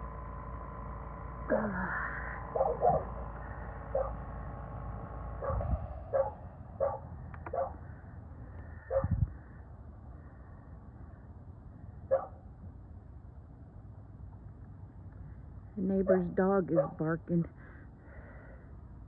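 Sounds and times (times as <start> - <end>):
low hum: 0.0 - 19.0
dog barking: 2.5 - 3.1, 3.9 - 4.2, 5.4 - 7.8, 8.9 - 9.1, 12.1 - 12.4, 16.0 - 17.0.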